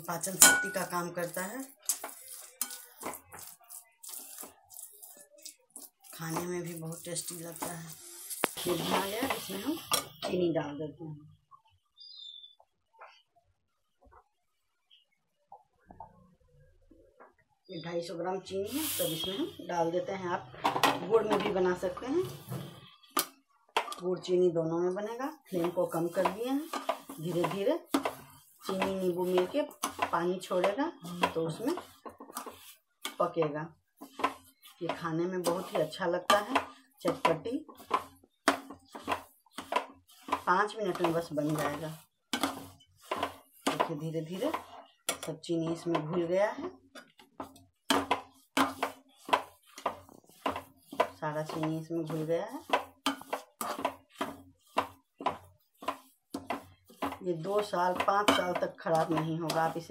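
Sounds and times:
spatula scraping a metal pan: 0.2s - 10.4s, 18.7s - 19.6s, 25.2s - 59.9s
steel spoon knocking on steel pan: 0.4s - 0.9s, 47.4s - 59.8s.

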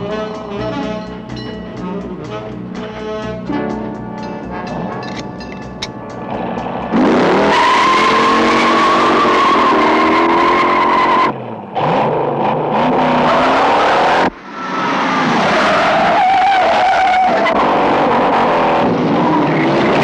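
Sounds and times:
car engines revving: 0.0s - 20.0s
tyres screeching: 4.2s - 11.4s.

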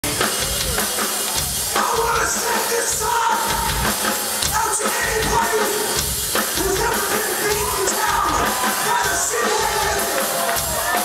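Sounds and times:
punk band playing live: 0.0s - 11.0s.

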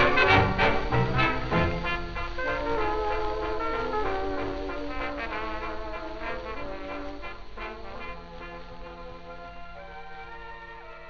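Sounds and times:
dance-band music from old record: 0.0s - 11.0s.

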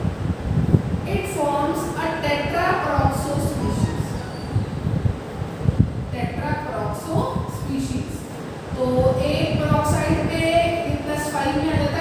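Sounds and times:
faint marker squeak: 3.9s - 4.7s.

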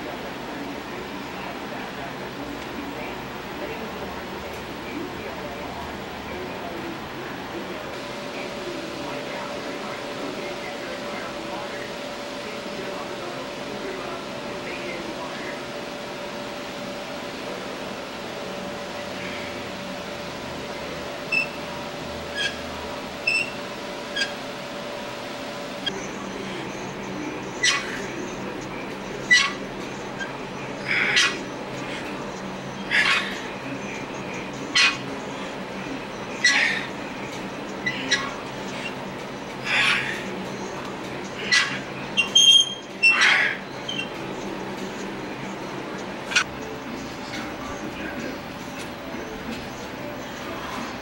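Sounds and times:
steady background hum: 0.0s - 51.0s
short high-pitched squeaks: 42.2s - 43.2s.

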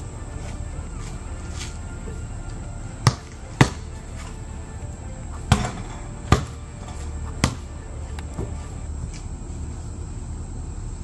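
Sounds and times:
music playing: 0.0s - 10.2s
basketball bouncing on concrete: 3.0s - 3.9s, 5.5s - 7.7s.

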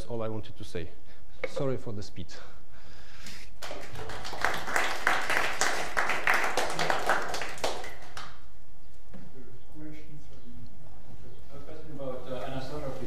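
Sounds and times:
audience applauding: 3.6s - 8.4s.

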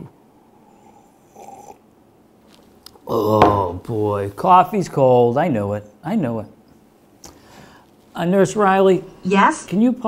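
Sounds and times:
man sipping coffee: 0.5s - 3.4s
throat swallowing sound: 1.2s - 1.9s.

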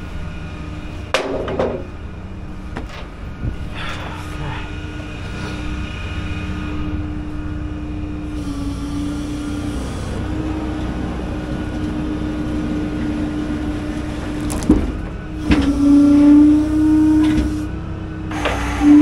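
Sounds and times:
truck engine running: 0.0s - 19.0s
knocks: 1.2s - 1.9s.

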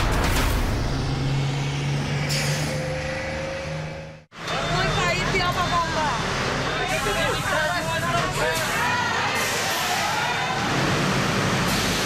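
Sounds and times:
bus engine droning: 0.0s - 12.0s
air brakes hissing: 2.2s - 2.8s.

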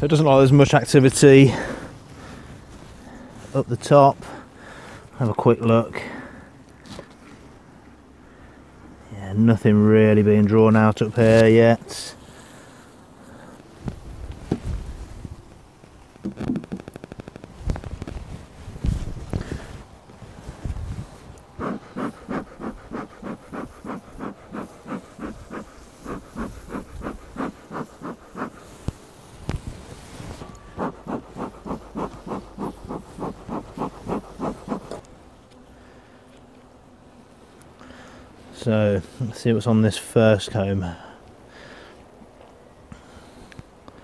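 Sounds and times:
bellows smoker puffing: 21.1s - 29.2s, 30.1s - 35.1s
hive tool knocking and scraping: 30.8s - 35.0s.

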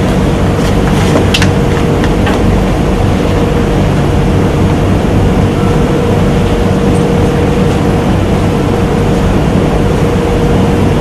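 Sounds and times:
constant low tone: 0.0s - 11.0s
loud hum and rushing noise: 0.0s - 11.0s.

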